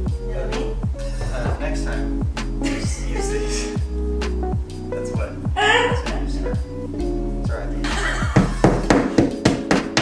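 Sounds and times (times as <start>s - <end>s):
background music: 0.0s - 10.0s
hammer rapping on wall: 8.4s - 10.0s.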